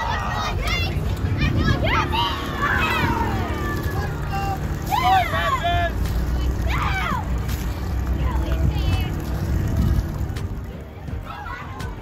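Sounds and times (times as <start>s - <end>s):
children shouting: 0.0s - 7.4s
steady low rumble: 0.0s - 12.0s.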